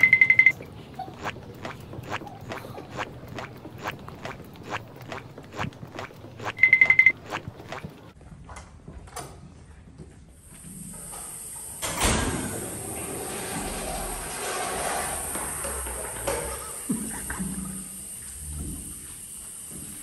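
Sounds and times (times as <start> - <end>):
rapid high beeping: 0.0 - 0.6, 6.4 - 7.2.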